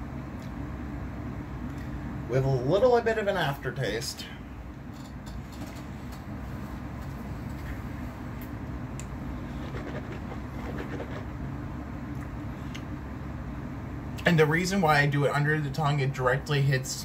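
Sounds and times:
low room hum: 0.0 - 17.0.

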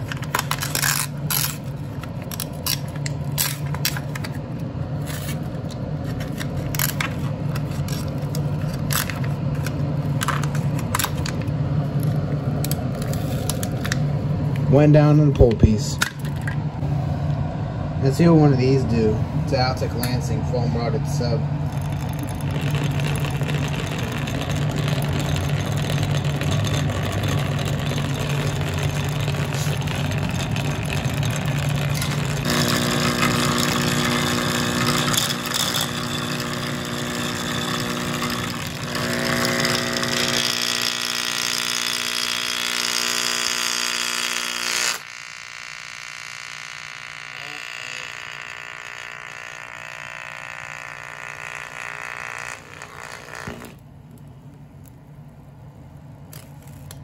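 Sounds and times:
overdriven subwoofer blaring distorted: 18.0 - 35.1, 36.1 - 53.8.

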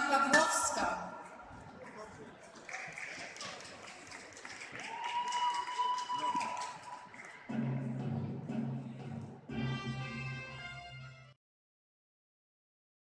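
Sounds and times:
audience applauding and cheering: 2.4 - 8.0
music playing: 6.5 - 11.4.

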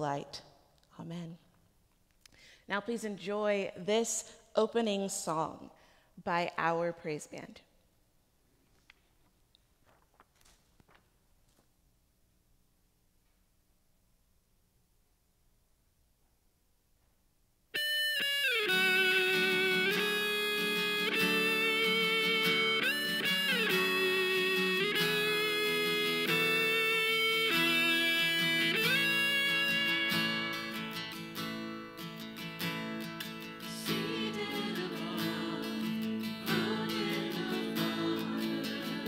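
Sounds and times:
guitar-led band instrumental: 17.8 - 39.0.

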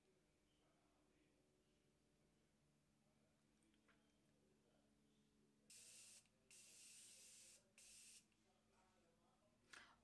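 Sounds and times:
setting spray hissing: 5.7 - 8.2.

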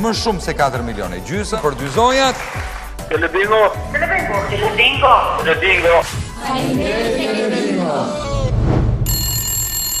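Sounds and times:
telephone bell ringing: 9.1 - 10.0.

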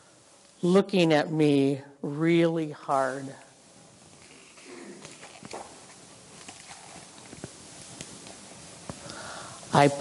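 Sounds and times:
book page turning rustle: 4.1 - 9.0.

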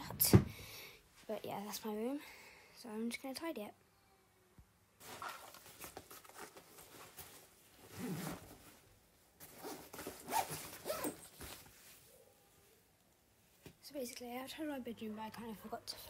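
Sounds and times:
bag rustling: 5.0 - 12.0
zipper on a backpack: 7.8 - 8.6, 9.4 - 11.4.

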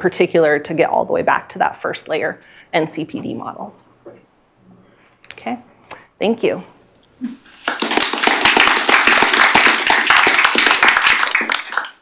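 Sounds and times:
audience applauding: 7.5 - 12.0.

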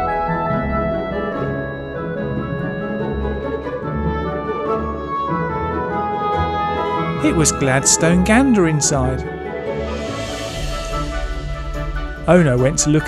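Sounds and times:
organ-like keyboard chords: 0.0 - 13.0.

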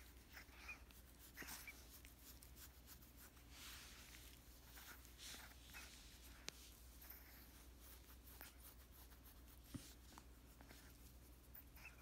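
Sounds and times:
hand rustling fur and blanket: 0.0 - 12.0.

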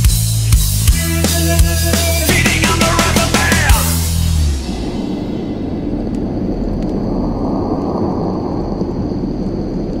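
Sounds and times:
dense low rumbling wash: 2.4 - 10.0
faint high whine: 4.5 - 10.0.

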